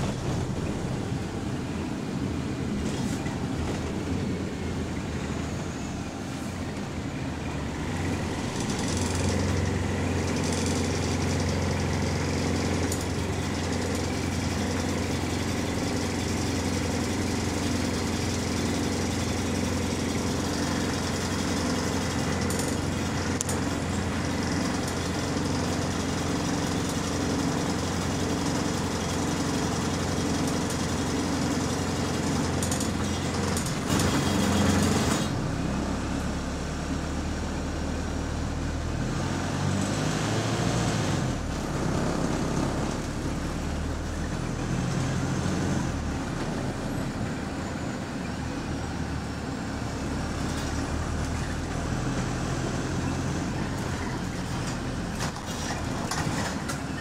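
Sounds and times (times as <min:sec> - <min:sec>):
bus body rattling: 0:00.0 - 0:36.1, 0:41.3 - 0:57.0
bus engine humming: 0:00.0 - 0:57.0.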